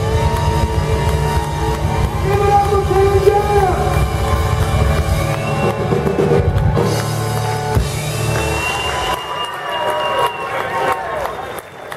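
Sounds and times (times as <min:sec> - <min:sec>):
live rock band playing: 0:00.0 - 0:09.4.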